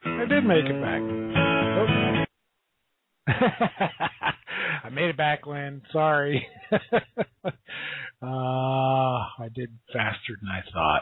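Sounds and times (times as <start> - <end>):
man talking: 0.0 - 1.1, 3.4 - 7.0, 7.8 - 11.0.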